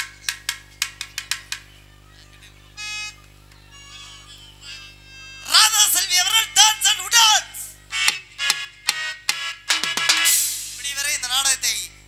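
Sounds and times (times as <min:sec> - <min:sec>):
sharp drum strikes: 0:08.1 - 0:10.8.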